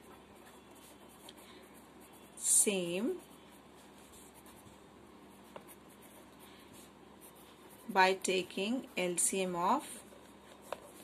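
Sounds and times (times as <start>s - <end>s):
pen scratching on paper: 0.0s - 11.0s.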